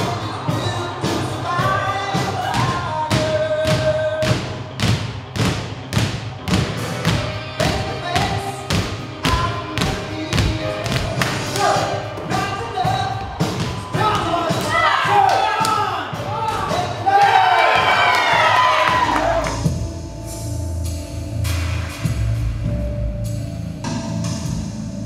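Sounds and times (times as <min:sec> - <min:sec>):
music: 0:00.0 - 0:25.0
basketballs bouncing on wooden floor: 0:02.4 - 0:14.8.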